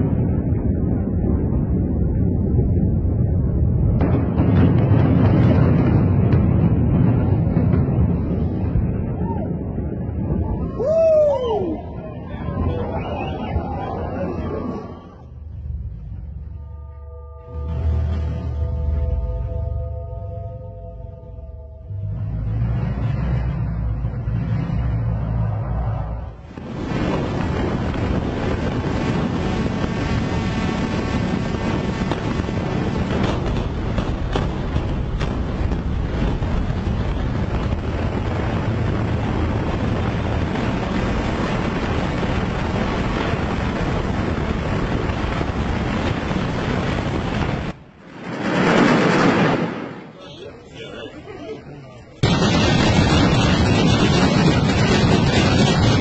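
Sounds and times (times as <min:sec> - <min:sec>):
buildings collapsing rumble: 0:00.0 - 0:16.9, 0:17.5 - 0:56.0
loud rush: 0:21.8 - 0:50.2, 0:52.2 - 0:56.0.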